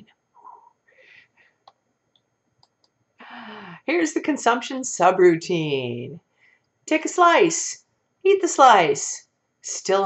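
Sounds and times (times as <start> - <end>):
faint clicks: 1.6 - 3.0
woman speaking: 3.2 - 6.2, 6.9 - 10.0.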